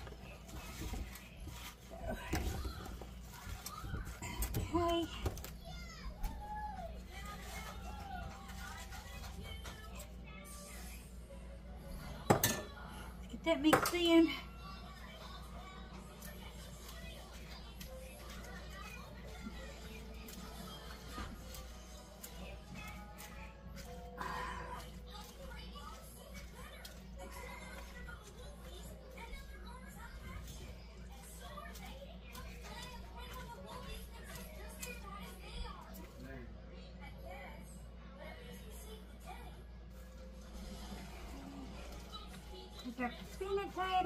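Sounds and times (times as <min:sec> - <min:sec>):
background music: 0:10.5 - 0:27.8.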